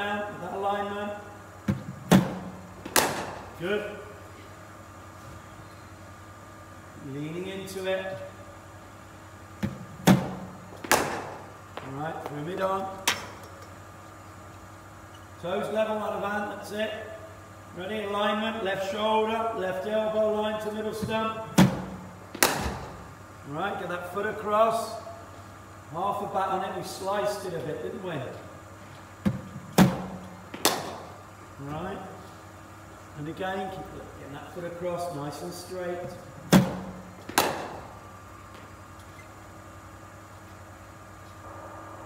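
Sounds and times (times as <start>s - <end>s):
sharp knocks: 1.7s - 3.4s, 9.6s - 11.4s, 29.2s - 31.1s, 36.5s - 37.9s
bat hitting ball crack: 2.1s - 3.5s, 10.1s - 11.4s, 21.6s - 22.9s, 29.8s - 31.2s, 36.6s - 37.9s.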